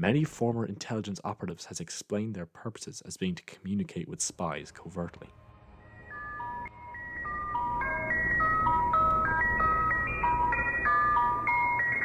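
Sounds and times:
high clean melody notes: 5.2 - 12.0.

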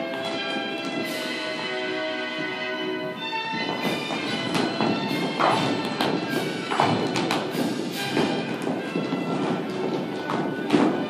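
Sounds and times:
music playing: 0.0 - 11.0
shoes stamping on floor: 3.0 - 11.0.

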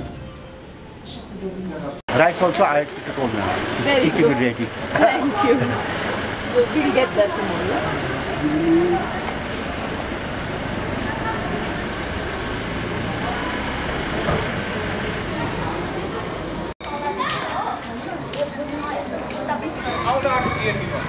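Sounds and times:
street noise: 0.0 - 21.0
indistinct voices: 2.1 - 21.0.

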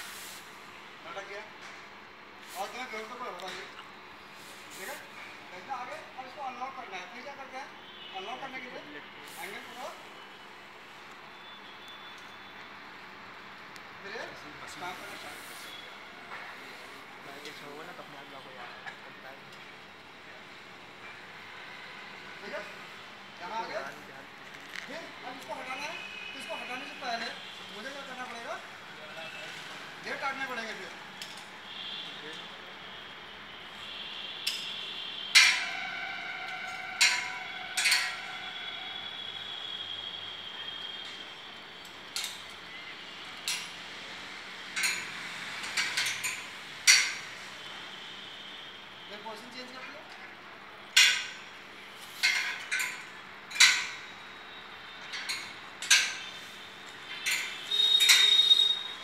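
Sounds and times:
distant traffic: 0.0 - 59.0
metal clanks on steel tower: 35.3 - 38.7, 44.7 - 47.3, 50.9 - 51.6, 52.2 - 54.2, 55.0 - 56.4, 57.1 - 58.8.

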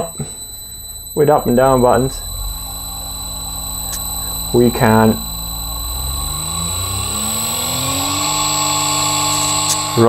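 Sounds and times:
electric motor hum rising: 0.0 - 10.0.

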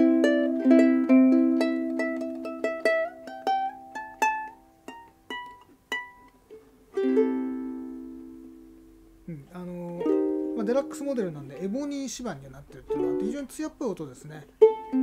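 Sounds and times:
ukulele strummed and plucked: 0.0 - 15.0.

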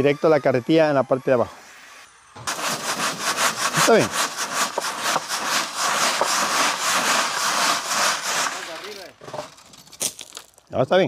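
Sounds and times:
sand sifting through wire mesh: 2.5 - 10.3.

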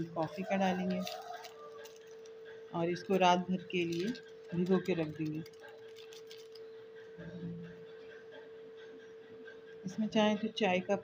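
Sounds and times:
sachet crinkling: 0.0 - 7.0.

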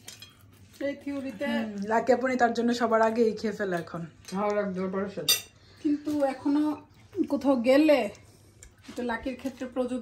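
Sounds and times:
cutlery clinking on plate: 5.2 - 5.6.

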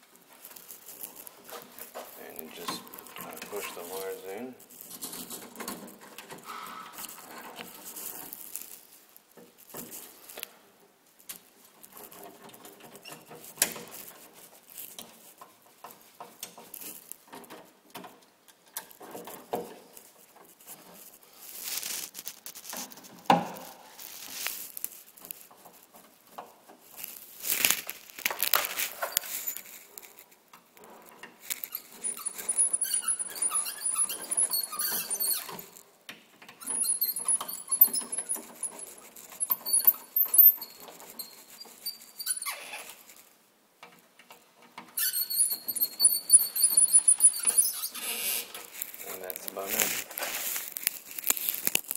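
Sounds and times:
scraping and clicks: 0.3 - 10.6, 11.2 - 51.9
short high squeaks: 0.6 - 4.6, 27.0 - 30.2, 31.4 - 35.8, 36.6 - 43.3, 45.0 - 51.9.

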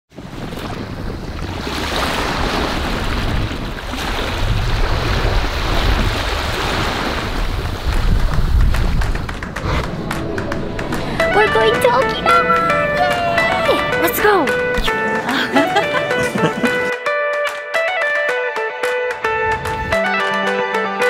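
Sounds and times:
wind rumbling on microphone: 0.1 - 14.0, 19.4 - 20.0
waves lapping on sandy beach: 0.1 - 16.9.

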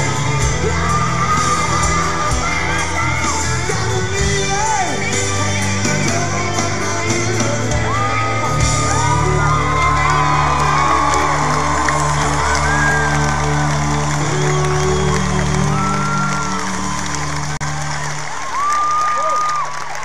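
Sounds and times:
crowd cheering: 0.0 - 20.0
whistles and whoops: 7.9 - 17.6, 18.5 - 19.8.

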